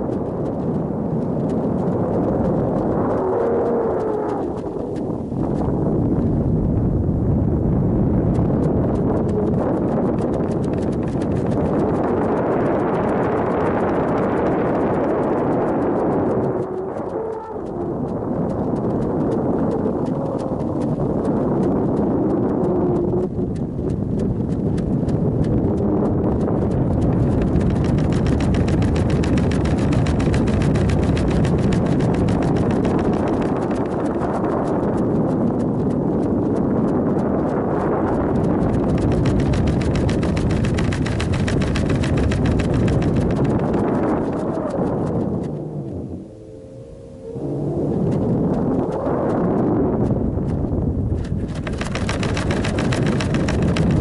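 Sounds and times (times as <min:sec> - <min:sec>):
rapid clatter of fine clicks: 0:08.3 - 0:45.6, 0:48.0 - 0:54.0.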